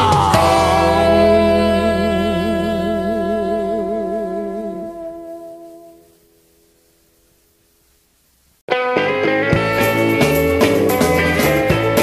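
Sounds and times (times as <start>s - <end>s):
rock band playing: 0.0s - 1.5s, 8.7s - 12.0s
held rock chord with vibrato: 0.0s - 5.1s, 8.7s - 12.0s.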